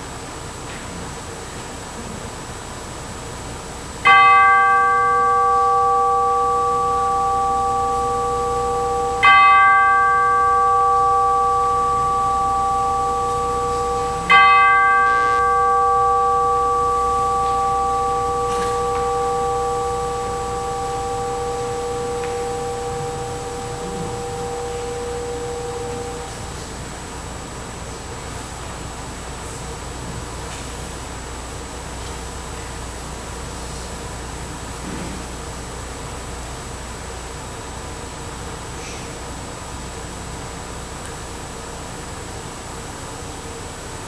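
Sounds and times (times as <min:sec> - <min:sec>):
bell ringing: 0:04.1 - 0:26.6.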